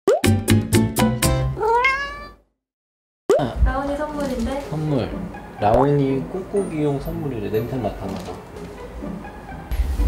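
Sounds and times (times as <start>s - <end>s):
cat meowing: 1.6s - 2.4s.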